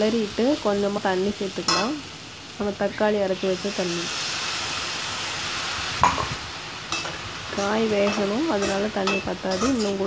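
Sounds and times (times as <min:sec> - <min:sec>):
vegetables sizzling in a pan: 0:00.0 - 0:10.0
metal spoon clinking on pan: 0:06.0 - 0:10.0.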